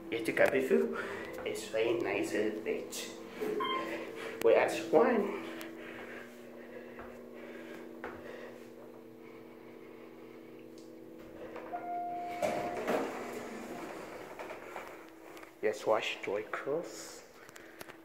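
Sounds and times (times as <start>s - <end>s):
elevator hum: 0.0s - 16.7s
elevator arrival chime: 3.6s - 4.1s, 11.6s - 14.4s
elevator doors sliding open: 11.6s - 15.0s.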